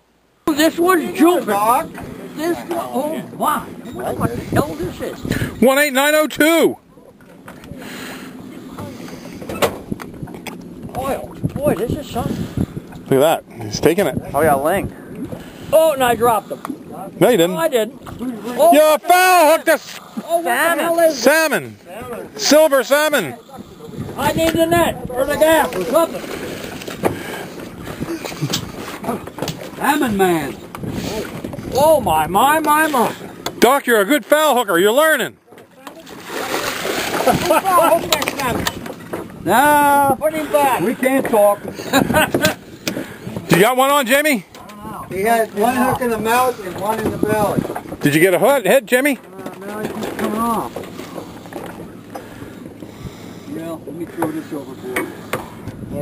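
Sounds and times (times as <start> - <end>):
boat engine humming: 0.0 - 56.0
fish thrashing and splashing: 35.9 - 39.4.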